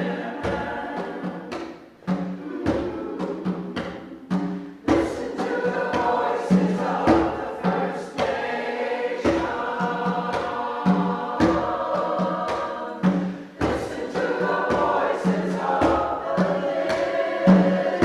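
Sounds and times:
church choir singing: 0.0 - 18.0
struck accompaniment notes: 0.6 - 7.5.

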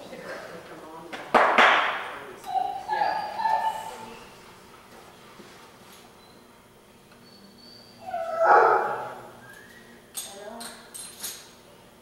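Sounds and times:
dog whining: 2.4 - 4.4, 7.2 - 9.6.

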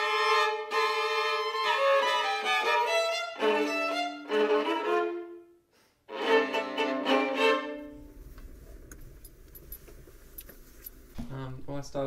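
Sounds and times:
car low rumble: 7.9 - 11.2
keys jingling: 8.8 - 11.0
man talking: 11.2 - 12.0.

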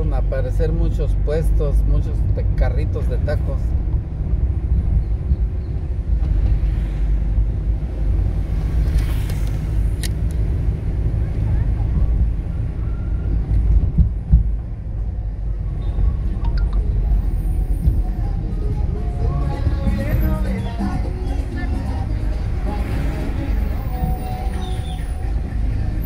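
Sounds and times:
car engine and road noise: 0.0 - 26.0.

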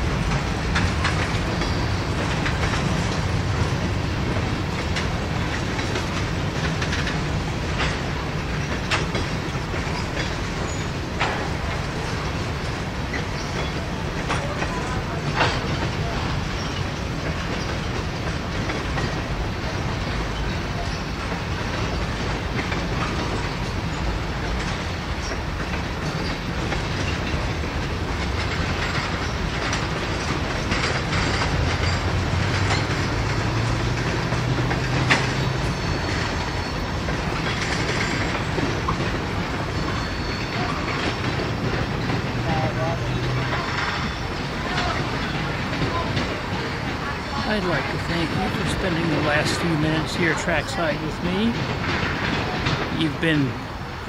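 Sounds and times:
freight train rolling rumble: 0.0 - 54.0
wheels clacking over rails: 0.0 - 54.0.

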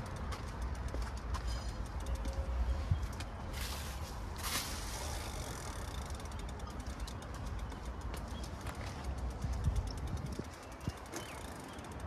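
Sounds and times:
rapid mechanical clicking: 5.0 - 12.0
wind rumble on microphone: 8.4 - 12.0.

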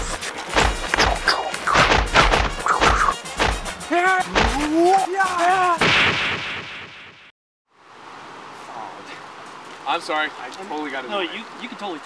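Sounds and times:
loud boom-like hit: 5.8 - 7.2
faint outdoor ambience: 7.7 - 12.0.

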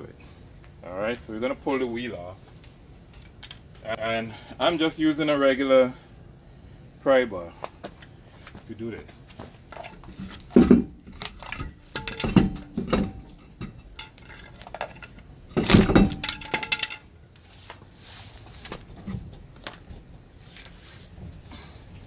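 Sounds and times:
pry bar clanking on steel wheel: 9.8 - 17.1.

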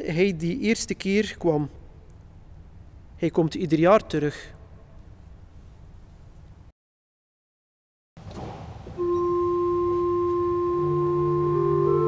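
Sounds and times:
church organ held note: 9.0 - 12.0
low organ bass note: 9.0 - 12.0.

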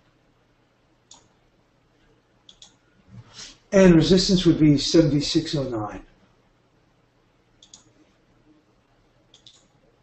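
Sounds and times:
faint computer mouse clicks: 1.1 - 1.3, 2.5 - 2.8, 7.6 - 7.9, 9.3 - 9.7.

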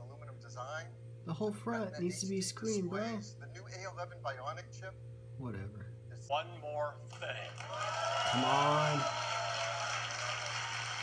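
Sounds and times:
steady low hum: 0.0 - 11.0
audience applause: 7.1 - 11.0.

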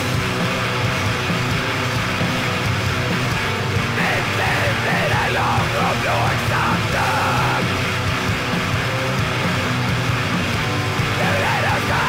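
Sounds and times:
bass guitar: 0.0 - 12.0
distorted guitars: 0.0 - 12.0
drums: 0.0 - 12.0.

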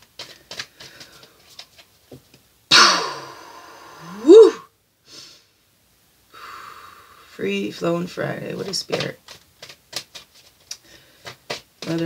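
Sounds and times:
woman exhaling heavily: 6.3 - 7.3.

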